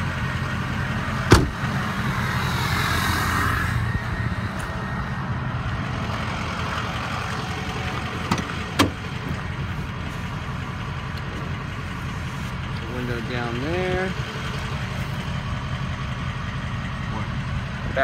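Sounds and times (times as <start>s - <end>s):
diesel engine idling: 0.0s - 18.0s.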